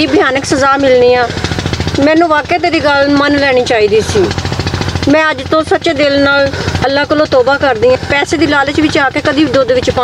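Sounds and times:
small engine pulsing: 0.0s - 10.0s
voices talking: 0.0s - 10.0s.

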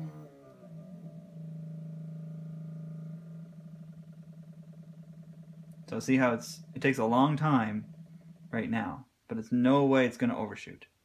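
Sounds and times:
powder trickler motor humming: 0.0s - 9.0s.

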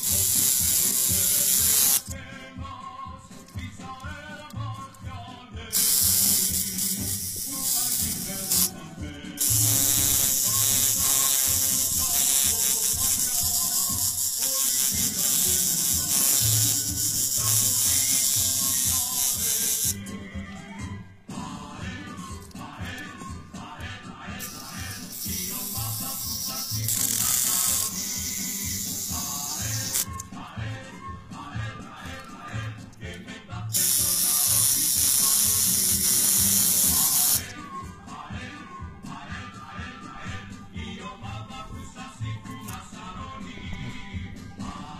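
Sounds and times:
tattoo machine buzzing: 0.0s - 2.1s, 5.7s - 8.8s, 9.4s - 20.0s, 24.4s - 30.2s, 33.7s - 37.5s
music with steady beat: 0.0s - 44.9s.

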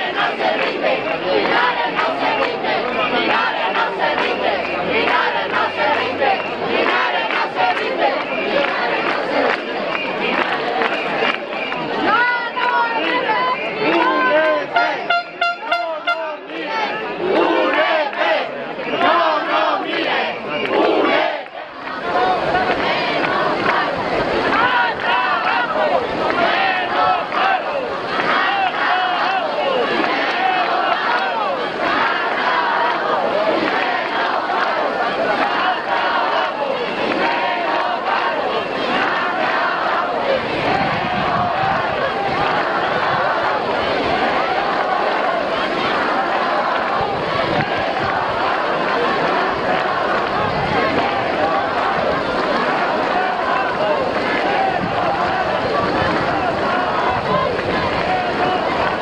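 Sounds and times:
crowd talking and calling out: 0.0s - 59.0s.

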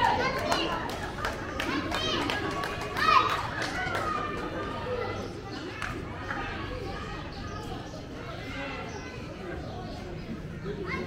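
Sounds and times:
voices shouting and calling: 0.0s - 11.0s.

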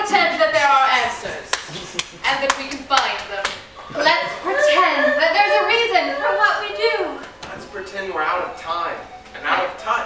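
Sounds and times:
voices: 0.0s - 10.0s
hand claps: 0.5s - 3.6s.

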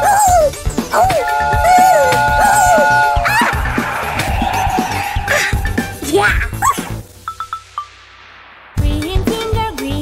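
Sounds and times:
yelp-like character vocalisations: 0.0s - 3.6s, 5.3s - 6.9s
cartoon music: 0.0s - 7.0s
rushing noise: 3.1s - 8.8s.

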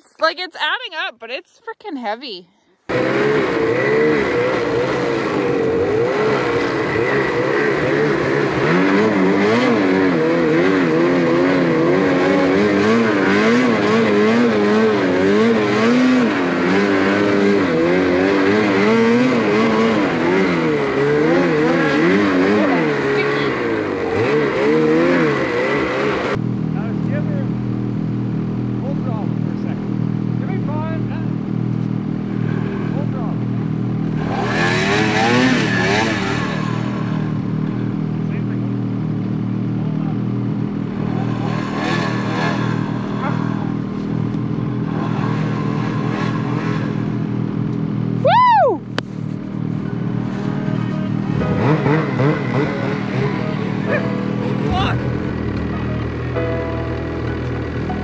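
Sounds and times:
snowmobiles idling: 0.0s - 34.2s, 48.8s - 58.0s
snowmobile engine pulling through snow: 2.9s - 27.4s, 32.1s - 48.3s, 49.0s - 58.0s.

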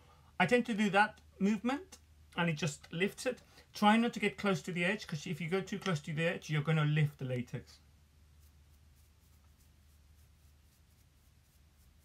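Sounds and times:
low steady hum: 0.0s - 12.0s
toothbrush scratching on skin: 8.3s - 12.0s.

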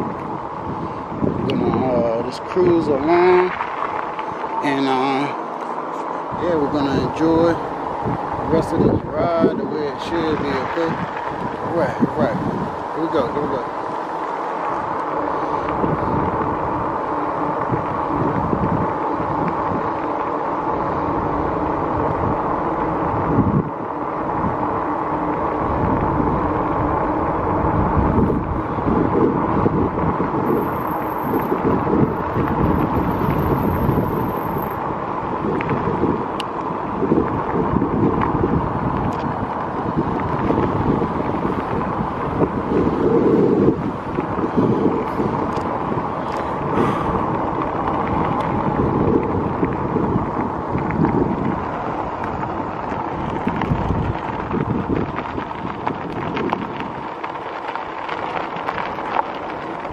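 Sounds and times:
bike running noise on road: 0.0s - 59.9s
wind buffeting microphone: 0.0s - 59.9s.

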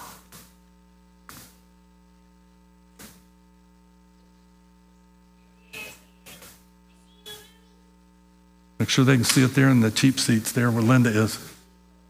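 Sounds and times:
electrical mains hum: 0.0s - 12.0s
marker squeaking on a whiteboard: 5.6s - 7.7s.

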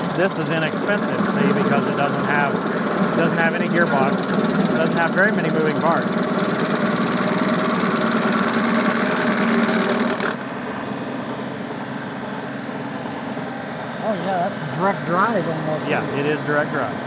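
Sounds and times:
stump grinder grinding hiss: 0.0s - 10.5s
diesel tractor engine droning: 0.0s - 17.0s.

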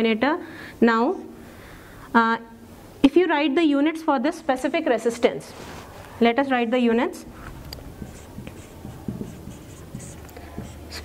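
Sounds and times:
marker squeaking on whiteboard: 7.3s - 11.0s.

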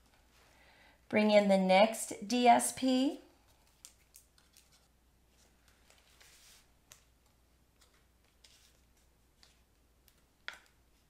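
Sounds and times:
paper rustling: 3.5s - 10.7s.

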